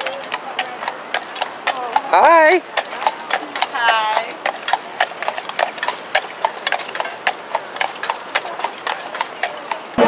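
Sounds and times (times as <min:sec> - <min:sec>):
horse hooves clip-clopping on pavement: 0:00.0 - 0:10.0.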